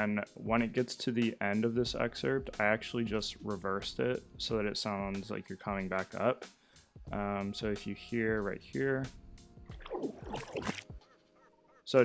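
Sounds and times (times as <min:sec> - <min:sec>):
reversed water splash: 0:09.8 - 0:10.9.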